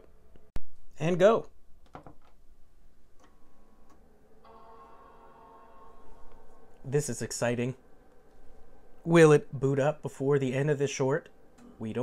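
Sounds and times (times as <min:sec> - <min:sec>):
computer startup chime: 0:04.5 - 0:09.7.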